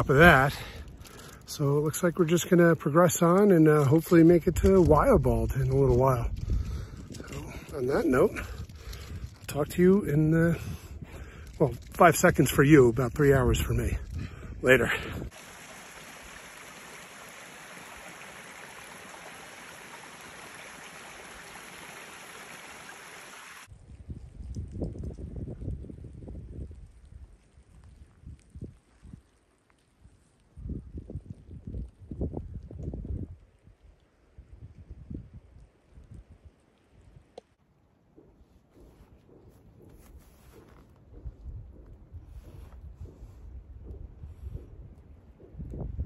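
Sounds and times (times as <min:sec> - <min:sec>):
wind buffeting microphone: 0:03.8 - 0:15.4, 0:23.7 - 0:29.3, 0:30.6 - 0:36.5, 0:38.2 - 0:46.0
small stream running: 0:14.7 - 0:23.7.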